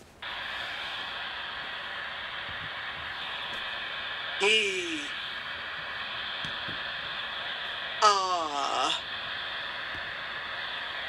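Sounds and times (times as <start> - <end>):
static hiss from phone speaker: 0.0 - 11.0.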